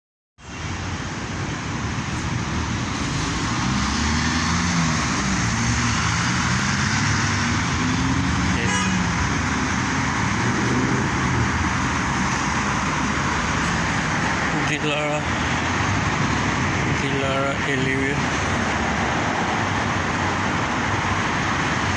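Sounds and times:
road traffic passing: 0:00.4 - 0:21.9.

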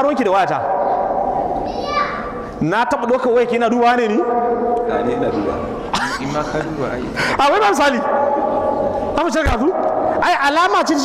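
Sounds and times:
steady electrical hum: 0:00.0 - 0:11.0
man talking: 0:02.6 - 0:08.1, 0:09.2 - 0:11.0.

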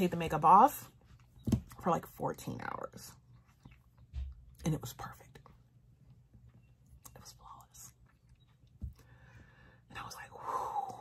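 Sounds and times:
woman whispering breathily: 0:07.1 - 0:08.0, 0:09.9 - 0:11.0.

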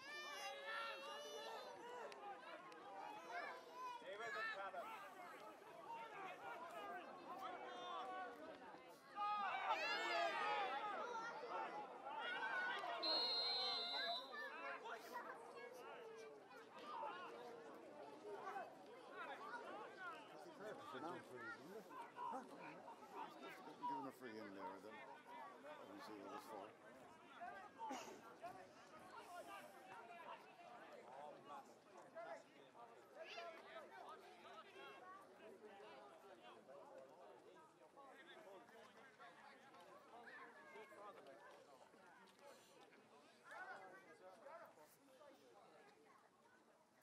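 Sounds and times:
people calling and chattering: 0:00.0 - 0:47.0.

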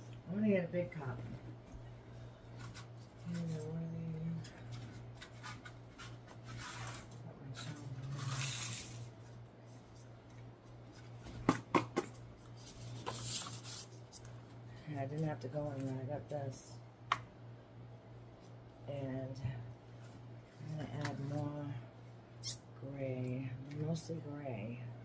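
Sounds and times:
steady low hum: 0:00.0 - 0:25.0
paper rustling: 0:04.7 - 0:11.5, 0:12.4 - 0:14.4.

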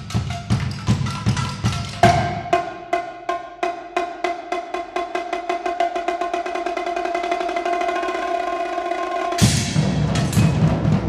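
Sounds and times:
fast percussion roll: 0:00.0 - 0:02.9, 0:05.0 - 0:11.0.

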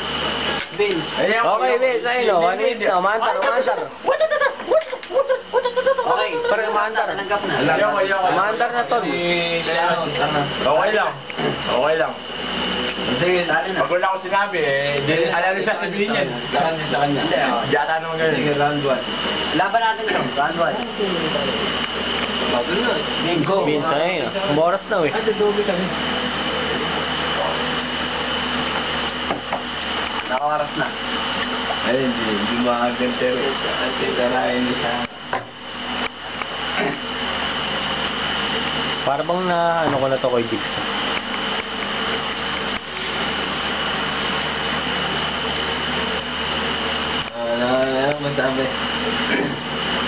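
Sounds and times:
mechanical hum: 0:00.0 - 0:50.0
steady high-pitched tone: 0:00.0 - 0:50.0
thin high whine: 0:00.0 - 0:50.0
men talking indistinctly: 0:00.5 - 0:04.8, 0:05.7 - 0:28.0, 0:30.2 - 0:35.4, 0:38.9 - 0:41.0, 0:47.1 - 0:49.7.

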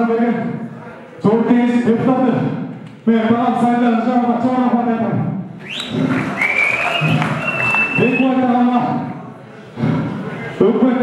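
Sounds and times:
crowd noise: 0:00.0 - 0:11.0
shrill whistle: 0:05.6 - 0:08.4.

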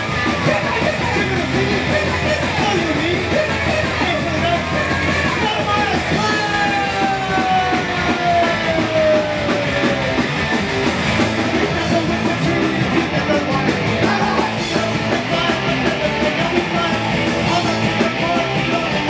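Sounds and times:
bass guitar: 0:00.0 - 0:19.0
distorted electric guitars: 0:00.0 - 0:19.0
drums: 0:00.0 - 0:19.0
shouted vocals: 0:00.0 - 0:19.0.

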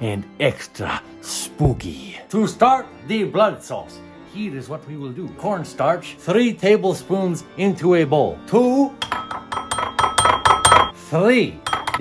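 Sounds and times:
spoon clinking against bowl: 0:09.0 - 0:11.0, 0:11.6 - 0:12.0.

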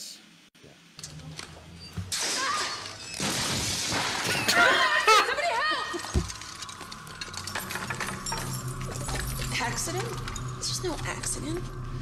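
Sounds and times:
glass shattering and debris breaking: 0:02.1 - 0:04.9, 0:06.0 - 0:10.7.

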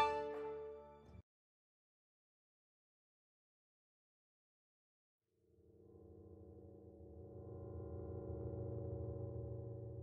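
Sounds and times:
low tone drone: 0:05.5 - 0:10.0.

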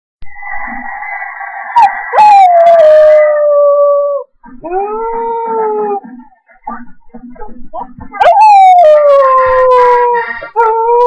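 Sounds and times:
husky howling: 0:00.9 - 0:06.0, 0:08.2 - 0:11.0.

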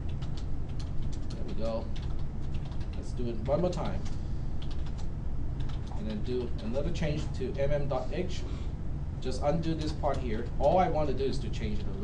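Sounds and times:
computer keyboard typing: 0:00.0 - 0:06.6, 0:09.6 - 0:11.1
steady low hum: 0:00.0 - 0:12.0.

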